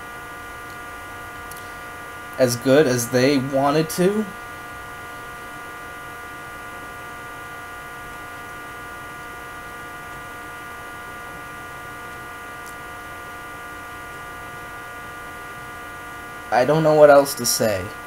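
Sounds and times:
electrical hum with high tones: 0.0s - 18.0s.

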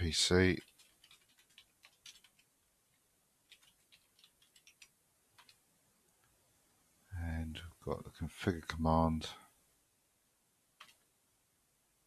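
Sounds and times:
computer keyboard typing clicks: 0.6s - 2.5s, 3.5s - 5.6s.

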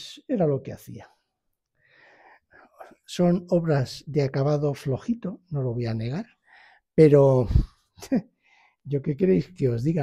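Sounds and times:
man breathing in: 1.8s - 2.8s, 6.4s - 6.9s, 8.4s - 8.8s.

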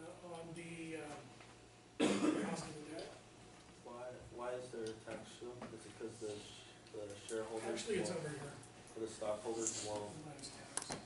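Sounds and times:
man coughing: 2.0s - 2.7s.

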